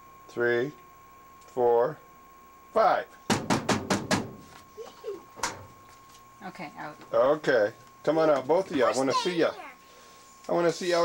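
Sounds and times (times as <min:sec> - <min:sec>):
knocks on metal dryer door: 0:03.3 - 0:04.5.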